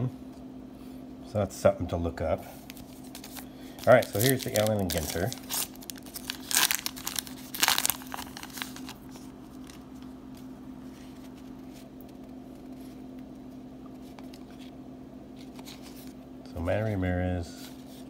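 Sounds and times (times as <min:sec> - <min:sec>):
steady low hum: 0:00.0 - 0:18.0
wrapper crinkling and tearing: 0:02.6 - 0:10.0.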